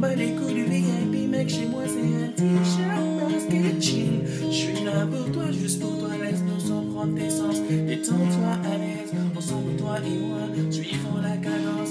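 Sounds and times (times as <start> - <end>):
acoustic guitar strumming: 0.0 - 11.9
man singing: 0.0 - 11.9.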